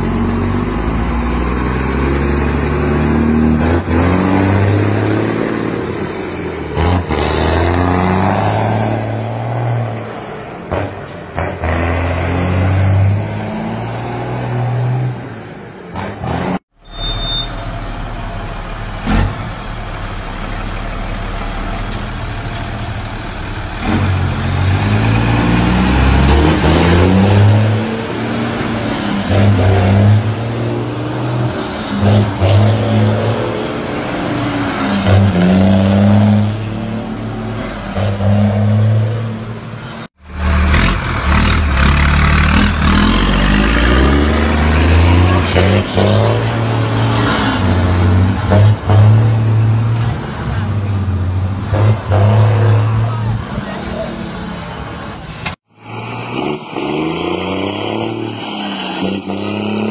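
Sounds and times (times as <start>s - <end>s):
diesel truck engines revving: 0.0s - 59.9s.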